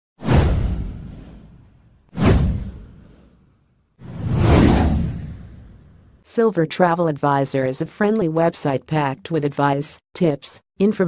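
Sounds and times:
whoosh transition effects: 0.2 - 6.2.

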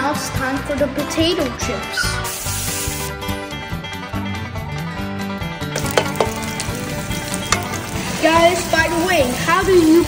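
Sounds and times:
plucked banjo-like music: 3.4 - 10.0.

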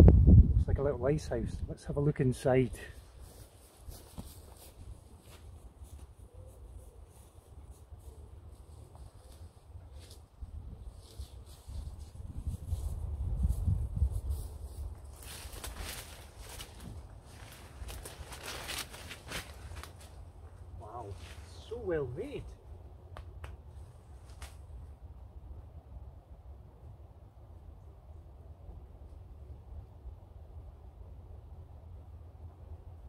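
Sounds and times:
wind rumbling on microphone: 0.0 - 1.9, 9.8 - 21.6
footsteps through tall grass: 2.9 - 21.9.

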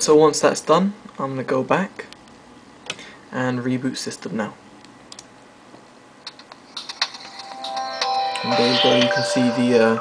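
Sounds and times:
phone boot-up chime: 7.2 - 10.0.

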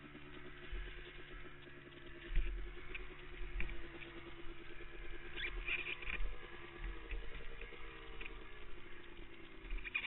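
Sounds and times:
quad engine idling: 0.0 - 10.0.

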